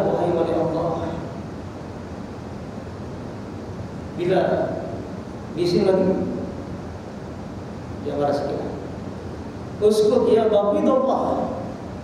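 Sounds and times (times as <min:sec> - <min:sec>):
room noise hiss: 0:00.0 - 0:12.0
man speaking: 0:05.6 - 0:06.4, 0:09.8 - 0:11.6.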